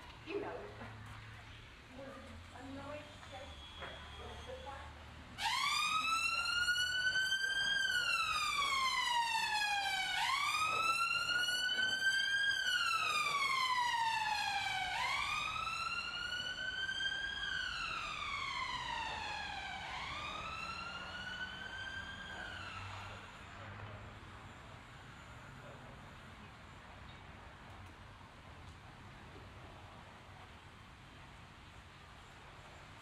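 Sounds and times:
emergency siren wailing: 2.6 - 26.6.

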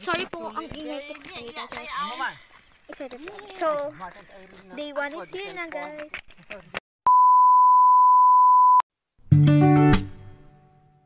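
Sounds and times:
steady test tone beep: 7.1 - 8.8.

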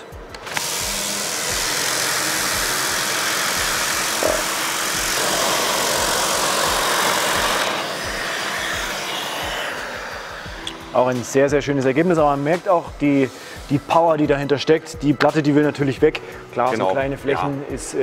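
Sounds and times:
orbital sander whirring: 0.0 - 14.6.

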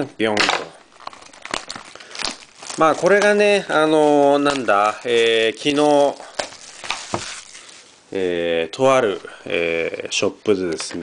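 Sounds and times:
shrink wrap crinkling and tearing: 0.3 - 8.0.

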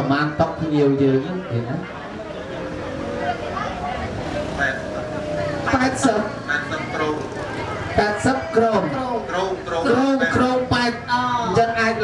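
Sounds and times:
man talking through loudspeaker: 0.0 - 2.0, 3.8 - 12.0
steady background noise: 0.0 - 12.0.

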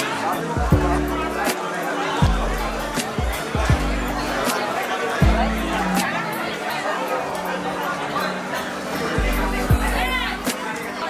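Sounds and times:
chatter of many diners: 0.0 - 11.0
faint music: 0.0 - 11.0.

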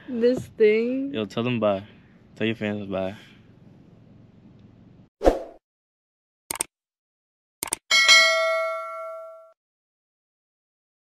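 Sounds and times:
notification bell ding: 7.9 - 9.6.

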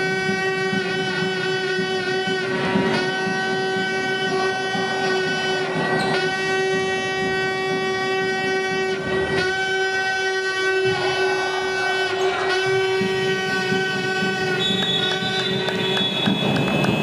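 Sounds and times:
loud steady horn tone: 0.0 - 17.0.

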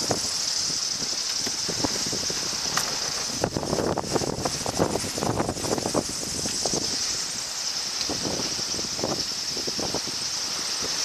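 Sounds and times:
wind and rushing water hiss: 0.0 - 11.0.

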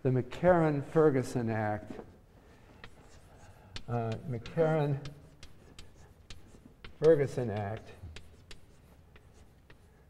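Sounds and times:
chalk tapping and scratching: 1.8 - 10.0.

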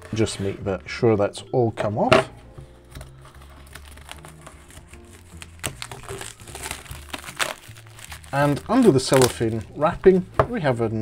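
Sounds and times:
quiet background music: 0.0 - 11.0
cellophane crinkling: 2.9 - 10.2.

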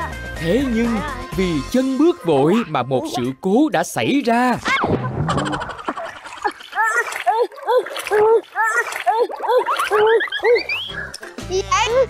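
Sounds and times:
water splashing: 4.6 - 11.3.

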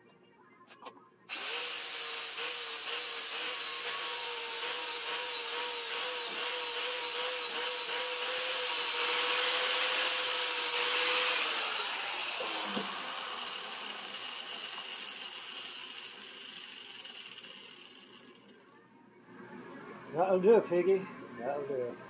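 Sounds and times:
angle grinder grinding steel: 0.8 - 18.4.

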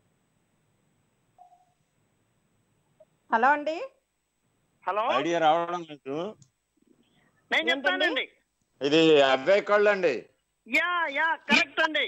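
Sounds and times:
faint short tone: 1.4 - 1.8.

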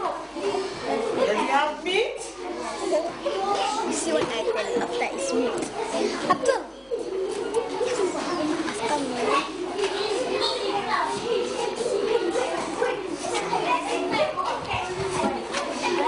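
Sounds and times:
children talking at once: 0.0 - 16.0.

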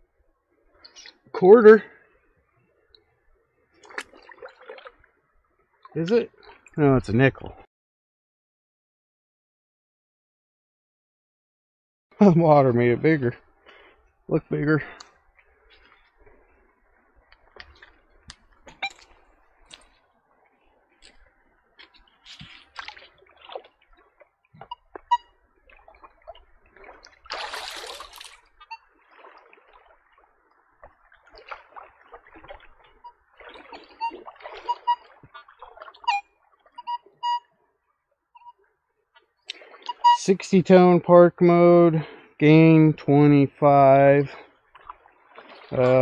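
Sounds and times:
water splashing and sloshing: 0.0 - 7.7, 12.6 - 40.9, 43.0 - 46.0
metal detector beeps: 18.7 - 19.1, 33.8 - 35.2, 36.0 - 37.5, 39.8 - 40.3.

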